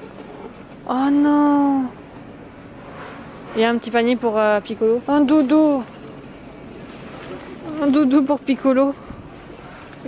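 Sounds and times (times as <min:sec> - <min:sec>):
warehouse store background hum: 0:00.0 - 0:10.0
woman speaking: 0:00.8 - 0:02.0, 0:03.5 - 0:06.0, 0:07.5 - 0:09.2.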